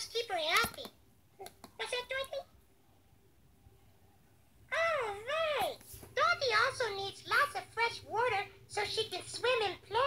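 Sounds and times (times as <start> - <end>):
high puppet voice exclaiming: 0.0 - 2.5, 4.7 - 10.0
faint low hum: 0.0 - 10.0.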